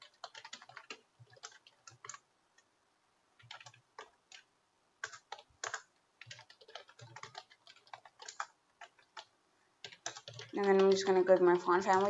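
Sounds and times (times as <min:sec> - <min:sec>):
computer keyboard typing: 0:00.0 - 0:02.7, 0:03.4 - 0:12.0.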